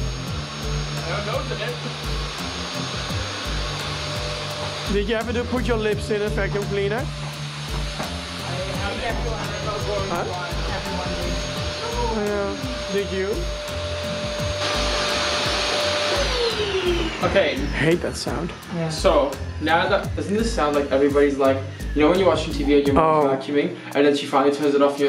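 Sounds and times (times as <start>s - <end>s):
vacuum cleaner running: 0.0s - 23.0s.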